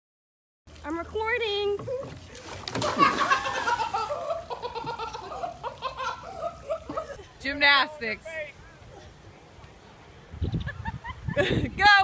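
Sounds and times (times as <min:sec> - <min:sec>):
diver hitting water: 0:02.4 - 0:04.0.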